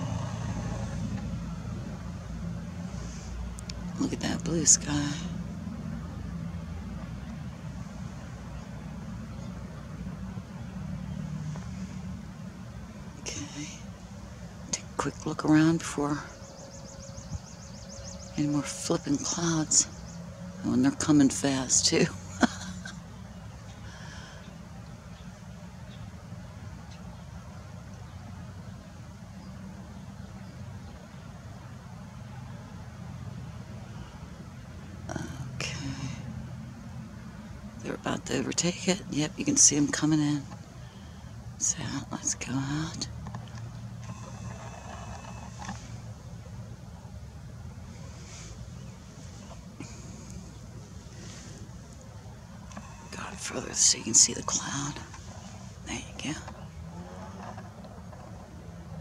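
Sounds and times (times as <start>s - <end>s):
low engine rumble: 0.0s - 59.0s.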